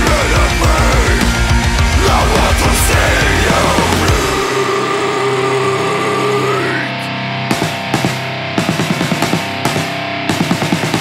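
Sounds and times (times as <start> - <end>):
distorted electric guitars: 0.0 - 11.0.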